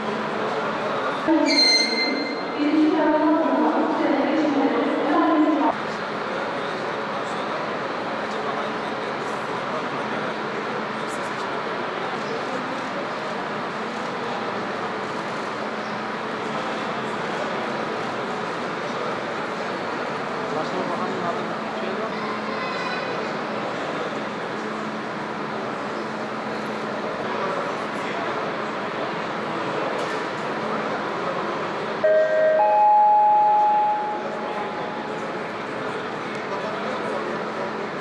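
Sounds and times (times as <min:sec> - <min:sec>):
crowded station din: 0:00.0 - 0:38.0
train horn two tones: 0:01.4 - 0:02.6, 0:32.0 - 0:35.0.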